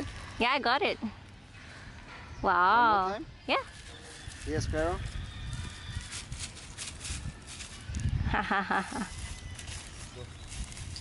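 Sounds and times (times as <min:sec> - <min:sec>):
footsteps crunching in dry leaves: 0:03.6 - 0:11.0.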